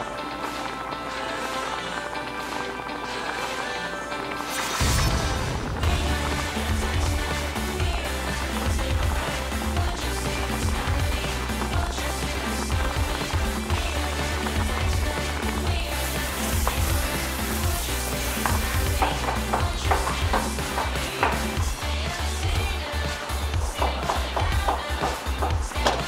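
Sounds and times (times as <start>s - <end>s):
background music with bass: 0.0s - 26.0s
broth boiling and sizzling: 3.1s - 26.0s.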